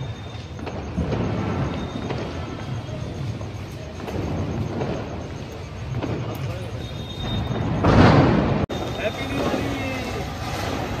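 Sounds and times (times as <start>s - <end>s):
fountain firework hissing: 0.0s - 11.0s.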